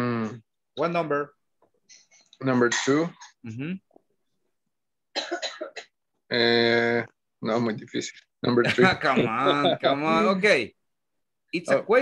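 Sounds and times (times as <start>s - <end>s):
person coughing: 5.2s - 6.0s.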